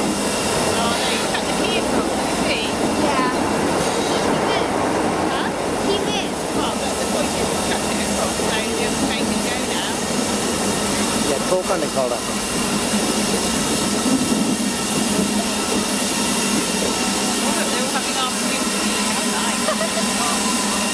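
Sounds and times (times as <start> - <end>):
diesel locomotive engine running: 0.0 - 20.9
train wheels rolling over rails: 0.0 - 20.9.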